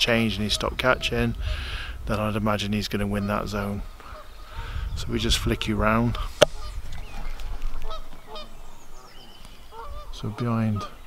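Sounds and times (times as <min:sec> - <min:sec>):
geese honking: 0:00.3 - 0:01.7, 0:02.9 - 0:11.0.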